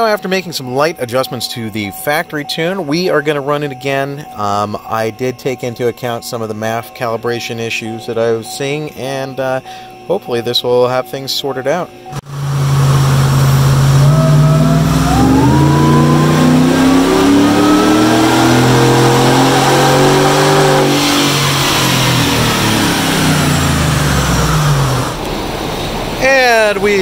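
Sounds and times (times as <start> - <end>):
supercharger whine: 12.0 - 27.0
engine revving at full throttle: 12.2 - 26.2.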